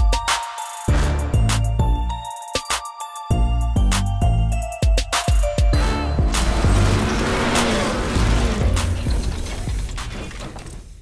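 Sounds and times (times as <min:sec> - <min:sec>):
music: 0:00.0 - 0:10.8.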